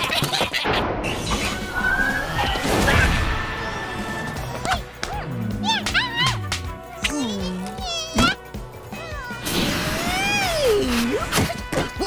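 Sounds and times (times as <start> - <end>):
cartoon music: 4.5 - 12.0.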